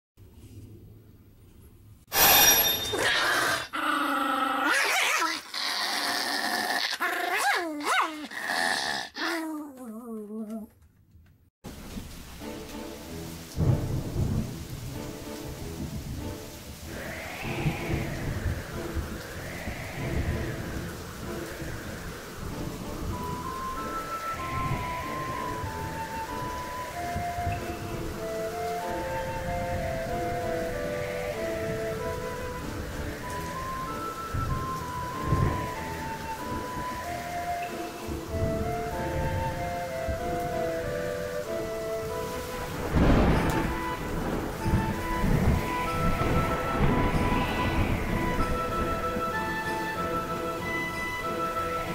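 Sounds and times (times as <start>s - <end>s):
steady rain: 3.2s - 9.1s, 11.6s - 51.9s
slow background music: 11.7s - 51.9s
thunder rumbles: 11.7s - 51.9s
swell of noise: 16.6s - 51.9s.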